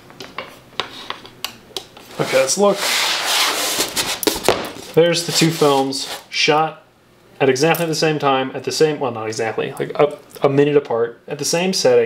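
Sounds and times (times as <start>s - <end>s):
wooden frame rubbing and sliding: 2.1s - 6.3s.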